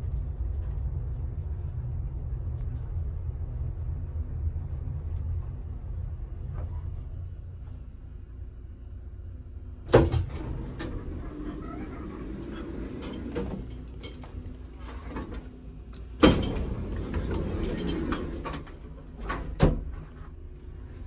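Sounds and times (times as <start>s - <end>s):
elevator low rumble: 0.0s - 21.0s
elevator loud clunk: 9.9s - 13.8s, 16.2s - 20.0s.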